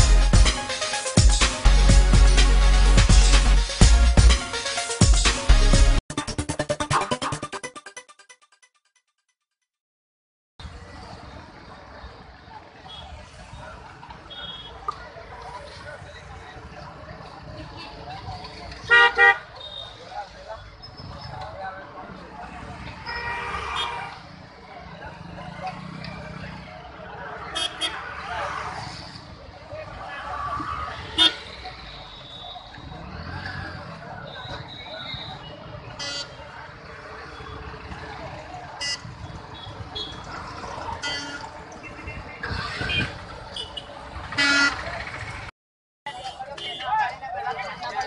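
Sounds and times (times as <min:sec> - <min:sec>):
crowd talking: 0:10.6 - 0:45.5, 0:46.1 - 0:48.0
vehicle horns honking: 0:18.8 - 0:20.0, 0:23.0 - 0:24.2, 0:27.5 - 0:28.0, 0:31.0 - 0:32.6, 0:34.2 - 0:36.4, 0:38.8 - 0:40.3, 0:41.0 - 0:45.2, 0:46.1 - 0:47.0
vehicle horn honking: 0:18.9 - 0:19.8, 0:23.0 - 0:24.2, 0:36.0 - 0:36.4, 0:41.0 - 0:45.0.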